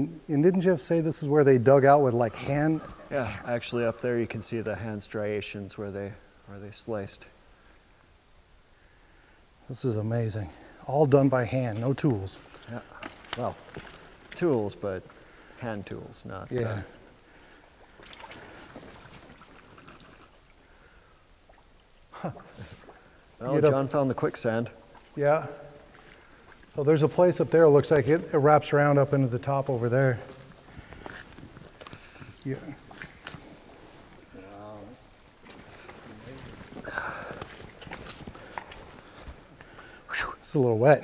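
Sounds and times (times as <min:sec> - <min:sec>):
low outdoor hiss: 0:00.0 - 0:41.0.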